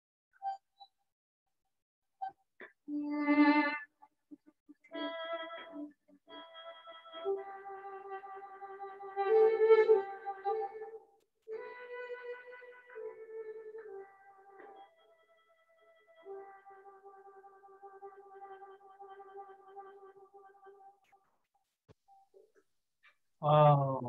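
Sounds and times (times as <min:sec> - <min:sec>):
electronic wind instrument melody: 0:04.9 - 0:20.9.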